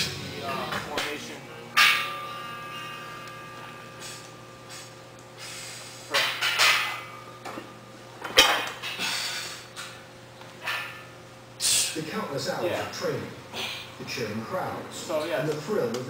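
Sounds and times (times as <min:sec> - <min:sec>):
steady low hum: 0:00.0 - 0:16.0
short hard breaths: 0:04.0 - 0:06.1.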